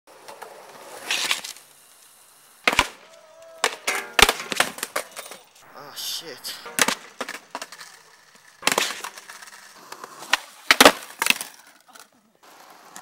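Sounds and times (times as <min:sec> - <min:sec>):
skateboard and skater hitting ground: 0:00.1 - 0:01.6, 0:02.6 - 0:05.5, 0:06.6 - 0:11.8
skateboard wheels rolling on concrete: 0:00.1 - 0:13.0
people crying out: 0:05.7 - 0:06.8.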